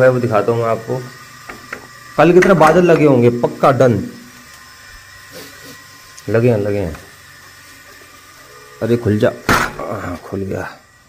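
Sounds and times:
water pump motor humming: 0.0s - 11.0s.

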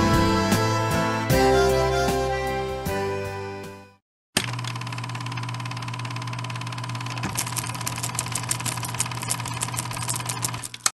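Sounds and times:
small motor humming and clattering: 4.4s - 10.9s.

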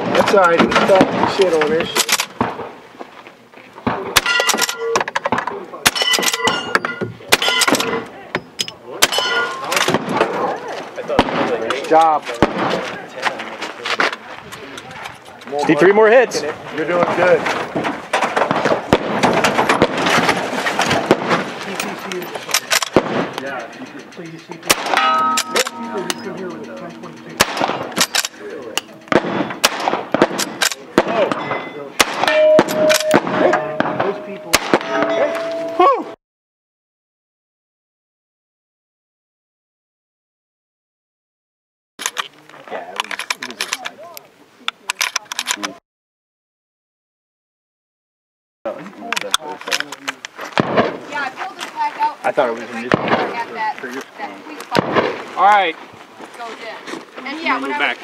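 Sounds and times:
people talking: 0.0s - 2.2s, 3.6s - 17.5s, 21.6s - 29.2s, 30.4s - 36.2s, 42.0s - 45.8s, 48.7s - 50.3s, 51.1s - 55.8s
voices: 3.3s - 18.0s, 20.2s - 36.2s, 48.7s - 58.0s
rifle shots cracking: 18.2s - 21.6s, 22.5s - 23.4s, 27.4s - 31.4s, 32.0s - 35.2s, 50.6s - 51.2s
sharp irregular clicks: 21.6s - 30.8s.

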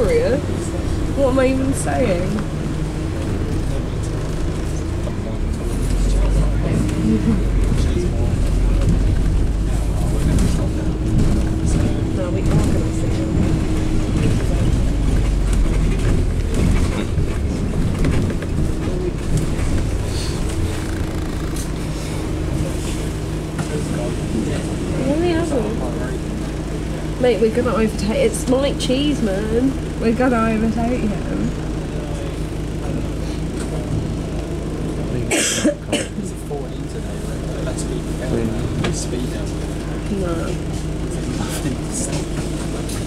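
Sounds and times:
bus engine and road rumble: 0.0s - 43.0s
steady whine: 0.0s - 43.0s.

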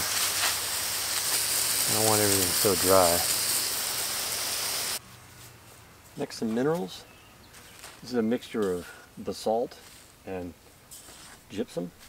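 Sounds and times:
hose water spraying on hay: 0.0s - 5.0s.

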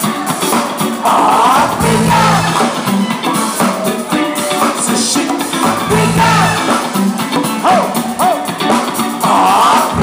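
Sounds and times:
live latin band playing: 0.0s - 10.0s.

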